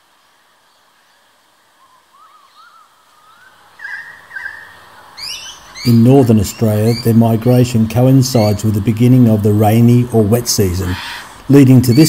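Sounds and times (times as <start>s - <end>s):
birds whistling: 1.8s - 8.7s, 10.8s - 12.0s.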